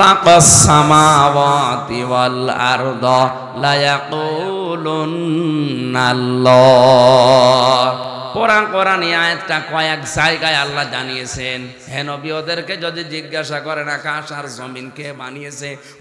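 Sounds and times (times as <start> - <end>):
man chanting a sermon: 0.0 - 16.0.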